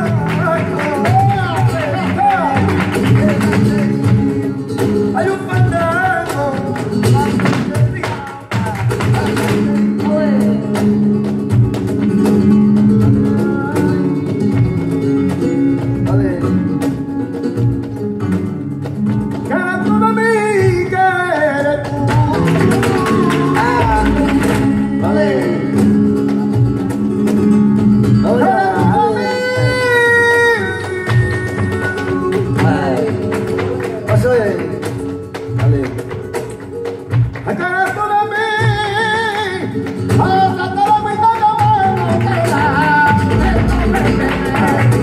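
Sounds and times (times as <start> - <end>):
flamenco guitars playing: 0.0 - 45.0
person singing: 13.0 - 15.3, 19.5 - 26.7, 28.2 - 34.4, 37.4 - 45.0.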